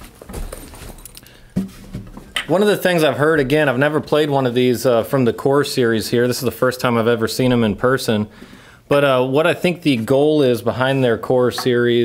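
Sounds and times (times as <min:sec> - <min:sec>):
guitar handling knocks and rustling: 0:00.0 - 0:02.6.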